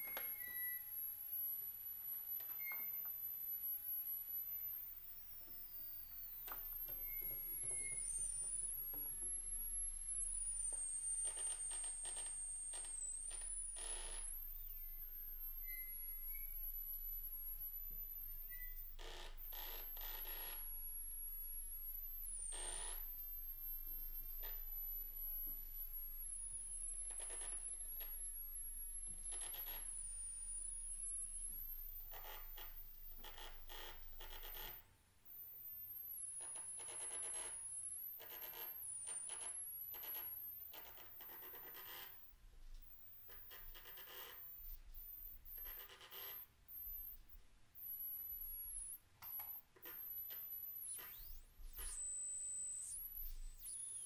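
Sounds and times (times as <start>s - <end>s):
high wavering electronic whistle: 4.6s - 41.1s, 41.9s - 54.0s.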